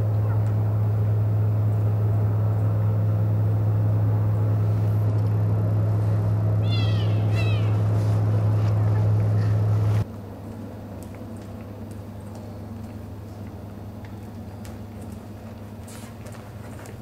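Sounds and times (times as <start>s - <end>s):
low electrical hum: 0.0s - 17.0s
high falling calls: 6.4s - 9.8s.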